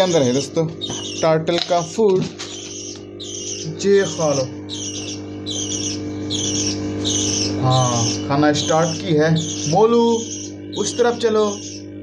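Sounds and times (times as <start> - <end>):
bird squawking: 0.0 - 12.0.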